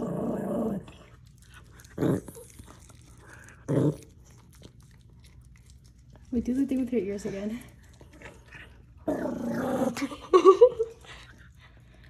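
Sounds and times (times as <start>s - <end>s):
small dog growling: 0.0s - 4.7s, 8.2s - 10.1s.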